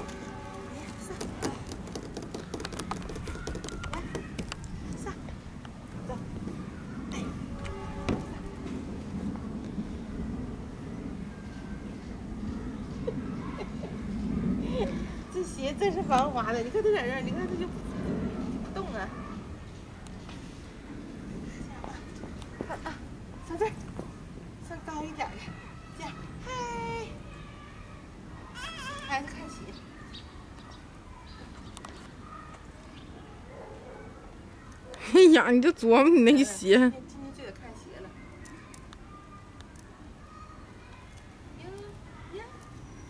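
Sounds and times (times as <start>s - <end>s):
baby squeaking: 28.6s - 29.2s.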